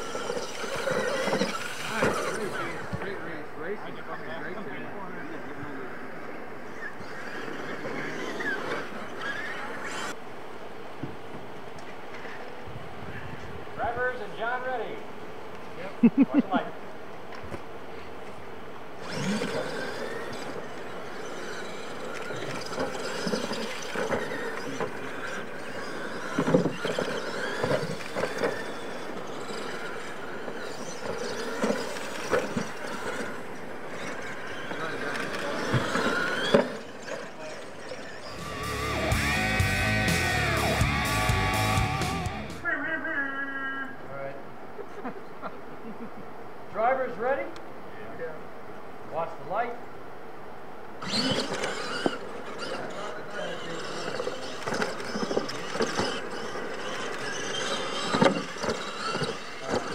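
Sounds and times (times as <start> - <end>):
radio-controlled truck motors: 0.0 - 10.2, 17.6 - 42.7, 50.9 - 59.9.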